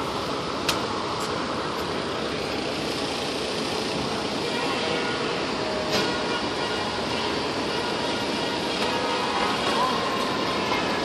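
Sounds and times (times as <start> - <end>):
city street noise: 0.0 - 11.0
fire truck engine idling: 0.0 - 11.0.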